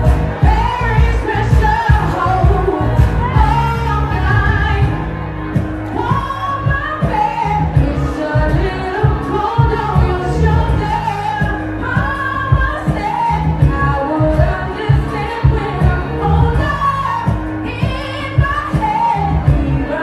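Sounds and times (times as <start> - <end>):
backing track with heavy bass beat: 0.0 - 20.0
woman singing into microphone: 0.0 - 20.0.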